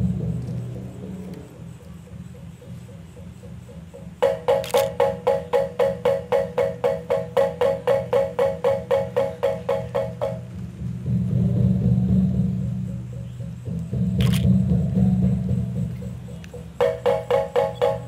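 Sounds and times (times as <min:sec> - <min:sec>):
kettle gongs struck with mallets: 0:04.0 - 0:14.0, 0:14.6 - 0:18.0.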